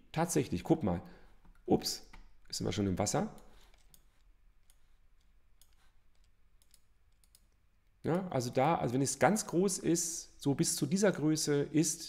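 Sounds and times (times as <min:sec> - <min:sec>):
computer mouse clicks: 0:03.4 - 0:07.6.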